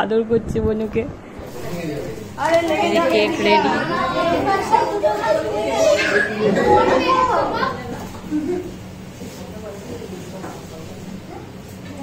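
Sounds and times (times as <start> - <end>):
people chattering: 1.3 - 12.0.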